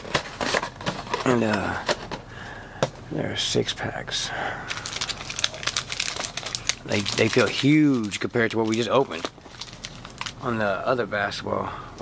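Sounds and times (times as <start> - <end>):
card packs crinkling: 0.0 - 2.2, 4.7 - 10.9.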